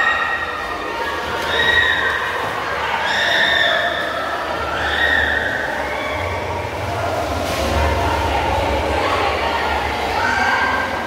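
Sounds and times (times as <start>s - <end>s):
indistinct voices: 0.0s - 11.0s
low rumble of moving water: 0.0s - 11.0s
water sloshing and splashing: 0.0s - 11.0s.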